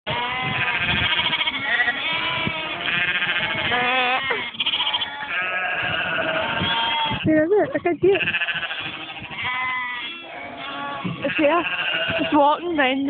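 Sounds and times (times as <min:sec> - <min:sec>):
sheep bleating: 0:00.1 - 0:07.3, 0:08.1 - 0:12.8.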